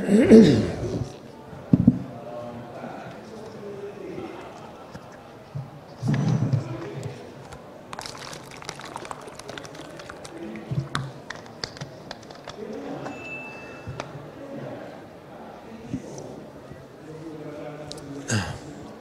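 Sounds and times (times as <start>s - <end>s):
loud cough: 0.0s - 0.8s
plastic bottle clicking and crackling: 7.4s - 12.6s.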